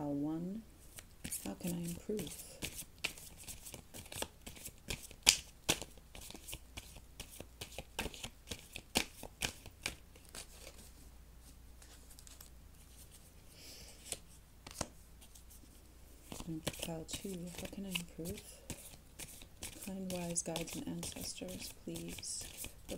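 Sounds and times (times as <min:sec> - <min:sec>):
cards being shuffled: 0:00.9 - 0:10.9, 0:11.8 - 0:13.2, 0:14.0 - 0:15.6, 0:16.2 - 0:22.9.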